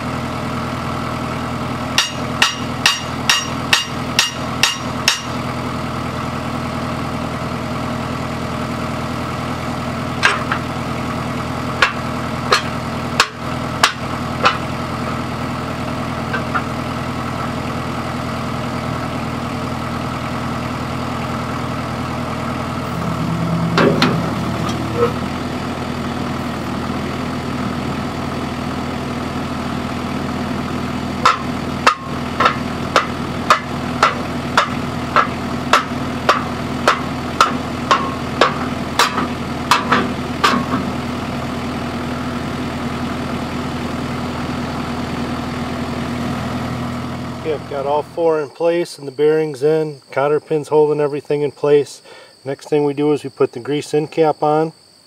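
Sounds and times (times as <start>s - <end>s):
engine idling hum: 0.0s - 55.0s
sledgehammer striking steel axle: 2.0s - 5.4s, 10.2s - 10.7s, 11.8s - 14.7s, 16.3s - 16.7s, 23.0s - 25.2s, 31.2s - 40.9s
wheels scraping along axle: 24.5s - 25.3s.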